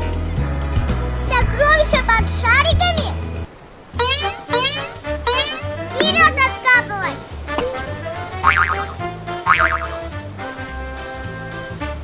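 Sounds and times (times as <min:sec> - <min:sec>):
brief warbling pitched sounds: 0:04.0 - 0:06.6
music with repeating bass line: 0:07.6 - 0:10.4.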